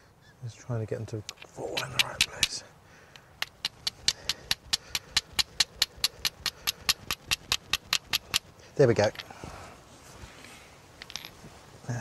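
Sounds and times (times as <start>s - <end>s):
flint striking pyrites clicks: 1.2s - 9.3s.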